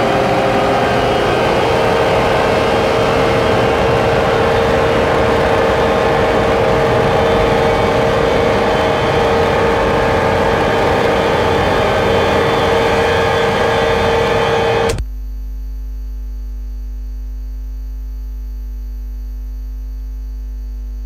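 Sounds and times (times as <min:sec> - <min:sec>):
electronic feedback noise: 0:00.0 - 0:15.0
steady low hum: 0:00.0 - 0:21.0.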